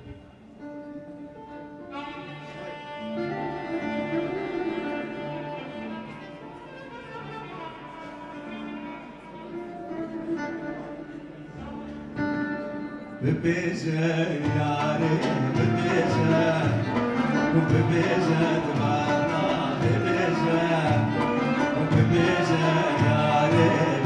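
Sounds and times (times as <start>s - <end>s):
live instrumental ensemble music: 0.0s - 24.0s.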